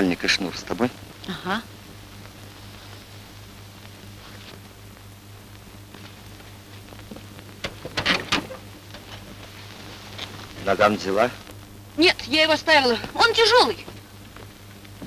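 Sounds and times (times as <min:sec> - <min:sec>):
film soundtrack hiss and hum: 0:00.0 - 0:15.0.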